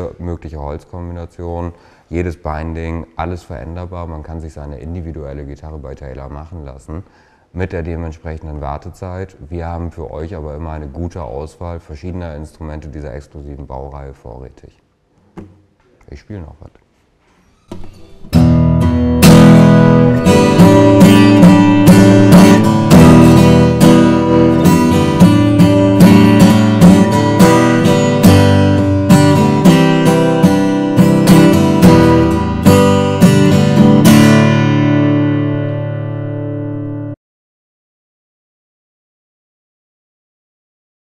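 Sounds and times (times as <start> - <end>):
acoustic guitar chords: 17.7 - 37.2.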